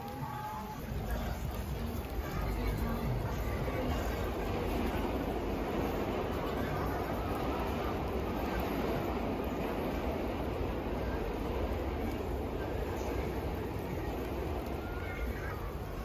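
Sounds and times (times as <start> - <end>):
rain: 0.0 - 16.0
traffic on wet street: 0.0 - 16.0.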